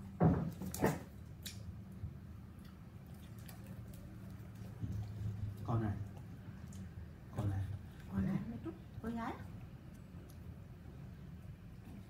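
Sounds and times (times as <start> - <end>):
dog licking and mouth clicks: 2.6 - 6.9, 9.8 - 10.5.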